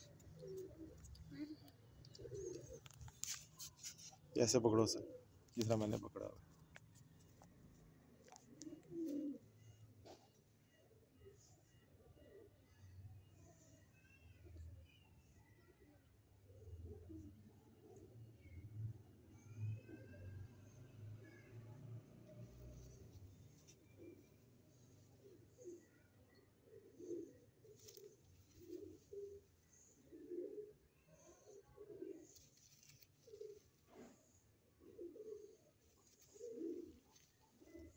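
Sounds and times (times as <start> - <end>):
pigeon cooing: 0.0 - 6.3, 8.3 - 10.3, 15.4 - 37.9.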